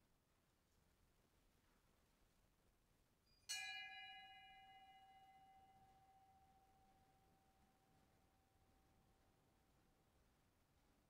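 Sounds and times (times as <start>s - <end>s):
small bell ringing: 3.4s - 6.9s.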